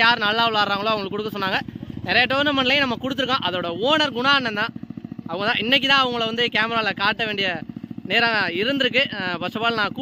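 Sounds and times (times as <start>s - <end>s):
man talking: 0.0s - 4.7s, 5.3s - 10.0s.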